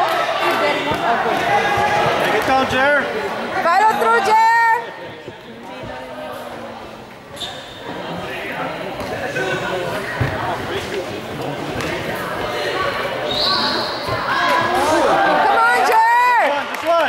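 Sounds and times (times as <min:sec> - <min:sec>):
crowd chatter: 0:00.0 - 0:17.0.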